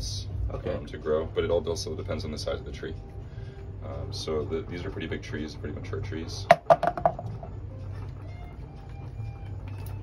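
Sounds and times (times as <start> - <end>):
steady low hum: 0.0 - 9.8.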